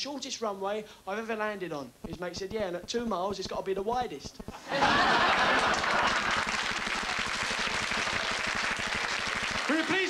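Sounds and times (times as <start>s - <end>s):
man speaking: 0.0s - 4.5s
audience laughing: 4.6s - 7.2s
audience applauding: 4.7s - 10.0s.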